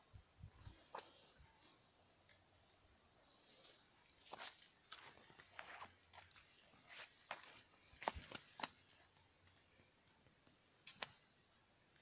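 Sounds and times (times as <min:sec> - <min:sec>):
footsteps on leaves and rocks: 0:03.4 - 0:09.2.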